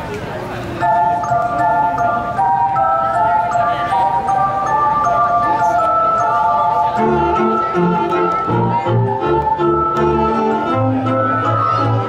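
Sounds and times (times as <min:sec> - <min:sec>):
string ensemble playing: 0:00.8 - 0:12.0.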